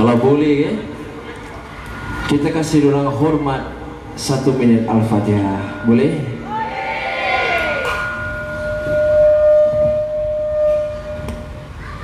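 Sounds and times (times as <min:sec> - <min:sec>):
low hum of live venue: 0:00.0 - 0:12.0
steady high tone: 0:00.0 - 0:12.0.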